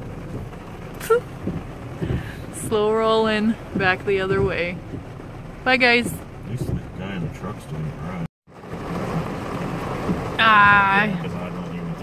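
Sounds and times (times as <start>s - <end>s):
truck cabin noise in rain: 0.0s - 12.0s
windshield wipers sweeping: 0.0s - 12.0s.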